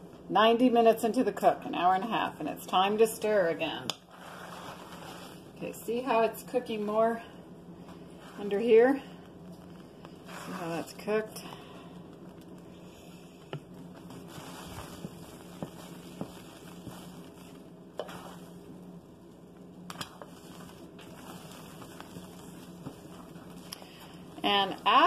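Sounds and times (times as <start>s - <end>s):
steady low hum: 0.0s - 25.0s
spatula scraping thick soap: 4.1s - 5.4s, 10.3s - 11.0s.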